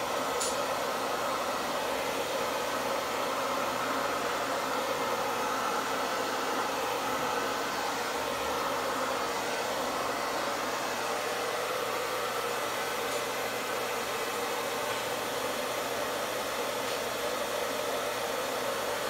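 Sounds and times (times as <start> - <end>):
hair dryer running: 0.0 - 19.0.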